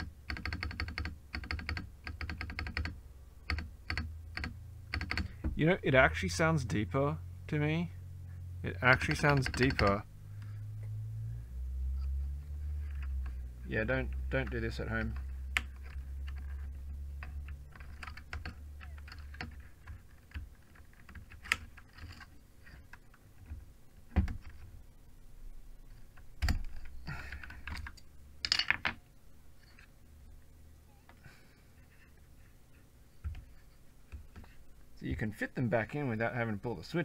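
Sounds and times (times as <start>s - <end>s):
mechanical keyboard keystrokes: 0.0s - 5.3s, 9.0s - 9.9s.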